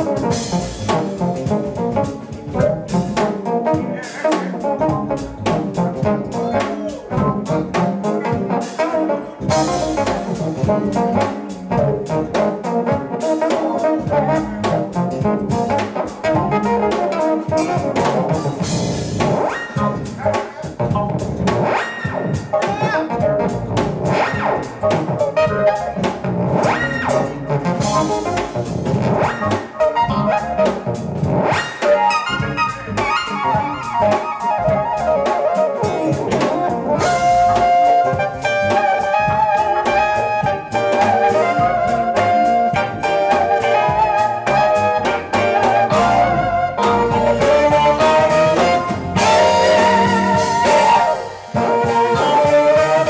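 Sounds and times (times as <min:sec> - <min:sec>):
drum kit: 0:00.0 - 0:53.0
jazz-funk band playing: 0:00.0 - 0:53.0
wind instrument melody: 0:00.0 - 0:53.0.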